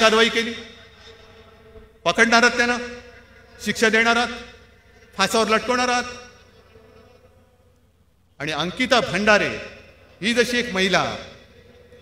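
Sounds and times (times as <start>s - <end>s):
faint low hum: 0.0s - 12.0s
speech echoing through loudspeakers: 0.0s - 12.0s.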